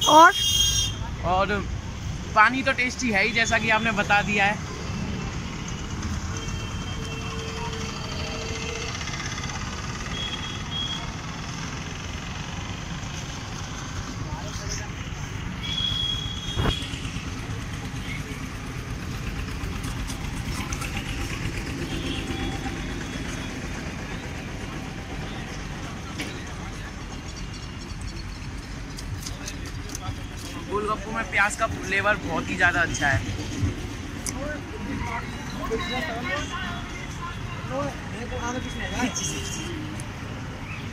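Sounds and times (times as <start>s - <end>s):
roadside traffic: 0.0s - 40.9s.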